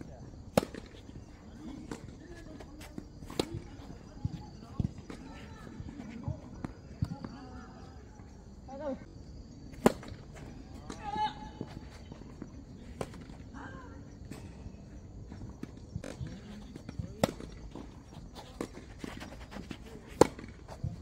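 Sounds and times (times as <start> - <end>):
tennis balls struck with rackets: 0.4 - 1.1, 9.8 - 10.2, 16.0 - 18.0, 20.1 - 21.0
tennis balls bouncing on court: 0.5 - 7.8, 15.2 - 21.0.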